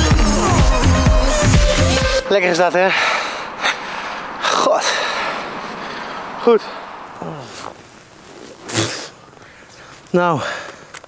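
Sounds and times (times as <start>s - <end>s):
background hiss: 2.2s - 11.0s.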